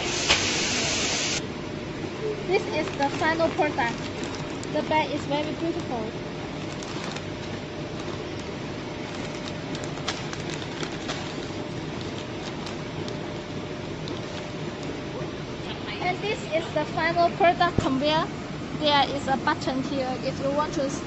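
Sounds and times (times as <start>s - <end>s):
packing machine running: 0.0s - 1.4s, 2.5s - 16.4s
faint steady hum: 0.0s - 21.0s.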